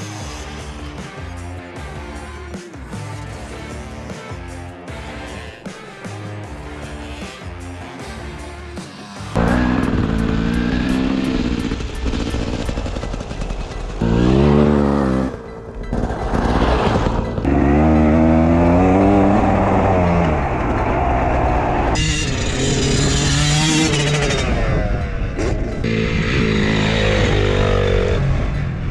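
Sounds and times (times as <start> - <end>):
background music: 0.0 - 28.9
dirt bike engine revving: 2.9 - 15.4, 16.0 - 28.9.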